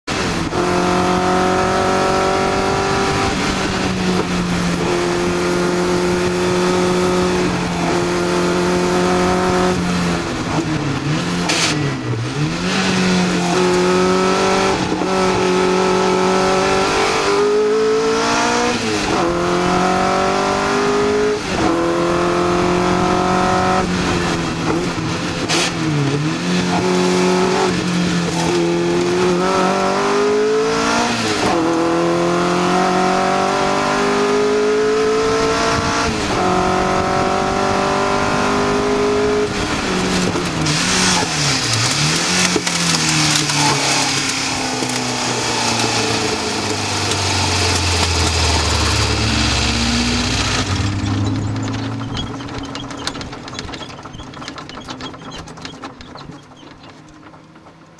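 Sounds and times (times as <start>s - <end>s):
car engine revving through gears: 0.1s - 57.9s.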